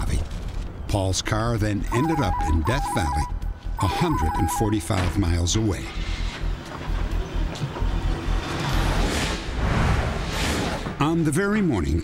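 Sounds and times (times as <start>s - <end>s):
whoosh: 8.7s - 11.0s.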